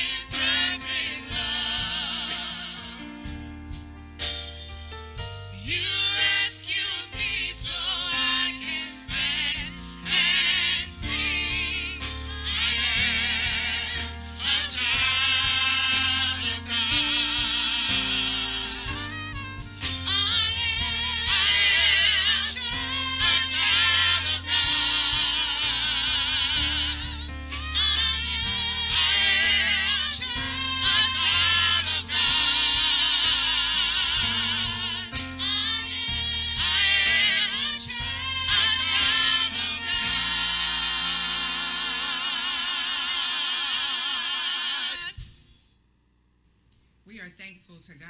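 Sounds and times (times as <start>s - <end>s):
low bass notes: 0.0s - 42.9s
gospel group singing: 0.0s - 45.6s.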